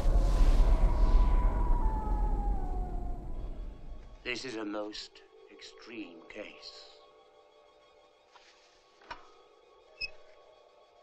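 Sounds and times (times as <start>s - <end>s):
deep rumble: 0.0s - 4.2s
whining tone sliding down: 0.0s - 4.2s.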